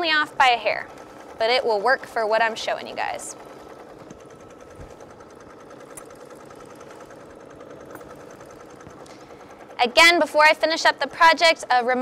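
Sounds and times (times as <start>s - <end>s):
embroidery machine stitching: 0.0s - 12.0s.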